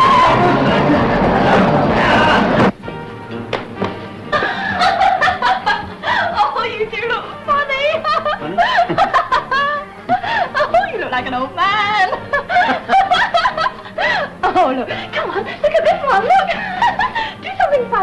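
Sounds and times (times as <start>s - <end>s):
background music: 0.0s - 18.0s
people laughing and giggling: 0.1s - 2.6s, 4.3s - 6.5s, 7.7s - 11.1s, 11.9s - 18.0s.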